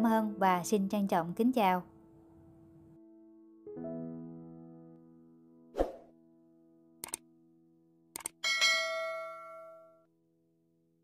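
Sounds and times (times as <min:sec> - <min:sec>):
mouse-like double clicks: 0:07.0 - 0:07.2, 0:08.2 - 0:08.4
bright bell ding: 0:08.4 - 0:10.0.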